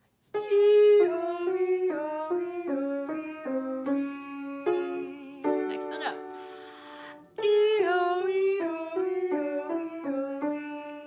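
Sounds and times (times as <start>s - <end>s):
woman singing vocal exercise: 0.4s - 11.0s.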